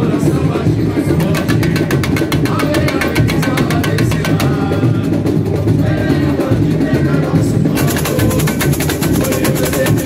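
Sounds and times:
deep bass drum beat: 0.0s - 10.0s
high drums fast strokes: 0.0s - 10.0s.

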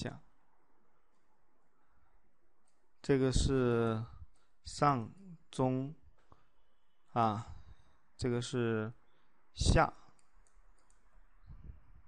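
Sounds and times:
faint short clicks: 10.1s - 11.0s.

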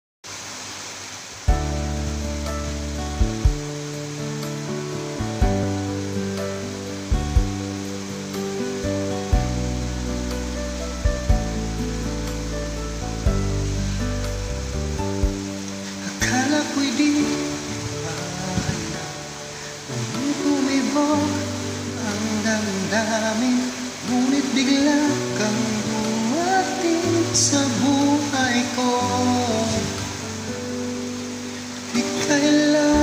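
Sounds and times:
steady hiss: 0.2s - 33.0s
instrumental karaoke backing track: 1.5s - 33.0s.

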